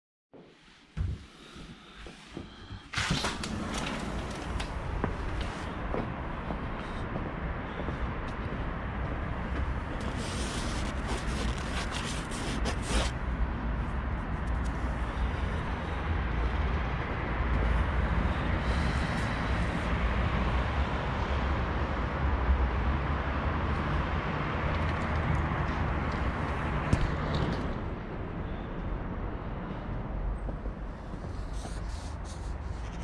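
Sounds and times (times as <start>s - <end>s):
traffic hum: 0.6s - 33.0s
fabric rustling: 10.0s - 13.2s.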